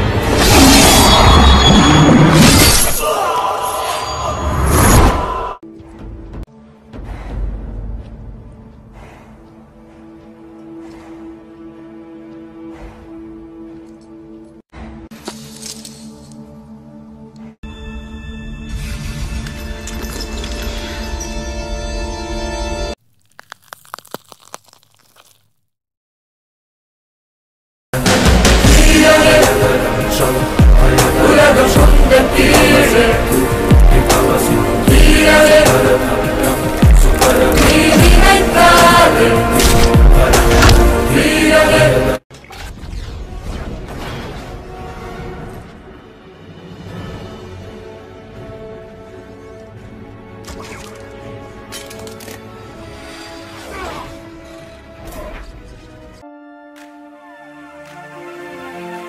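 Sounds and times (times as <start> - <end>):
film score with held notes: 5.3 - 23.0, 42.9 - 59.0.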